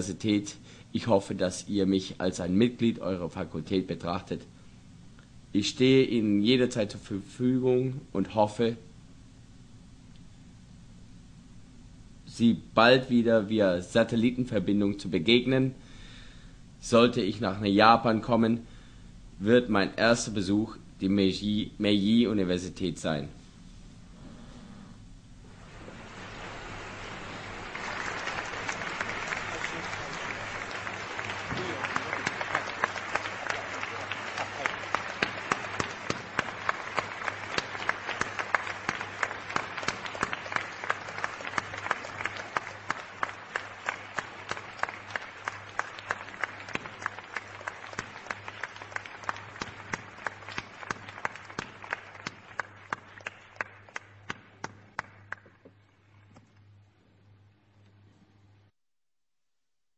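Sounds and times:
audience applauding: 0:25.6 - 0:55.6.

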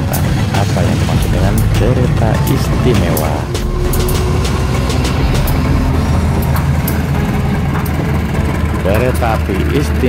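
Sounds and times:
diesel locomotive engine drone: 0:00.0 - 0:10.0.

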